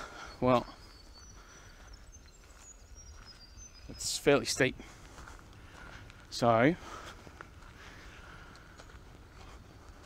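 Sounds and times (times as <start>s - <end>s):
high bird calls: 0.0s - 10.0s.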